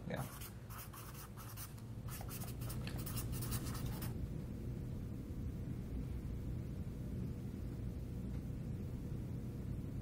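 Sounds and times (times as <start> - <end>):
low room hum: 0.0 - 10.0
pens scratching on paper: 0.2 - 4.2.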